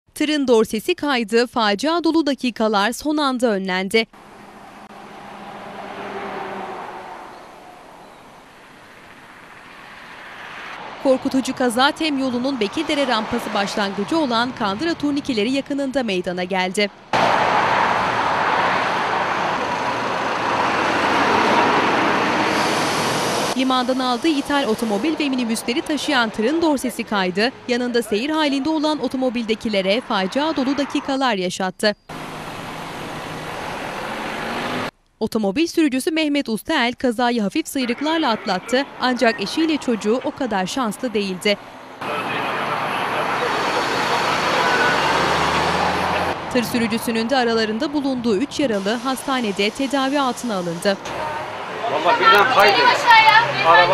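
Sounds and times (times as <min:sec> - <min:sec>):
motorway traffic passing: 0:04.1 - 0:35.0, 0:37.2 - 0:53.9.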